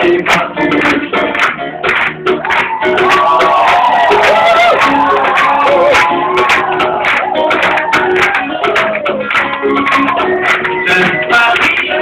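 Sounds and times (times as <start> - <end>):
live acoustic band music: 0.0 - 12.0.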